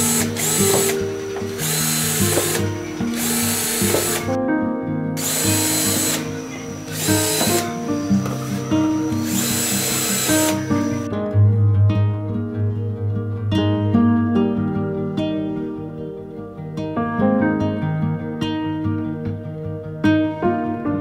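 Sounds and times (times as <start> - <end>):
cordless drill running: 0.0 - 4.4, 5.2 - 11.1
background music: 0.0 - 21.0.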